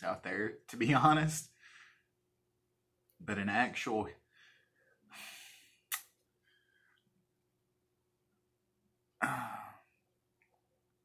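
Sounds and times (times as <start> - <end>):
man sighing: 9.2 - 10.0.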